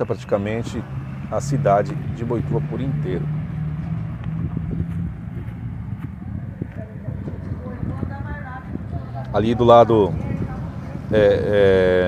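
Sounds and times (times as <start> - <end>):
traffic engine hum: 0.0 - 12.0.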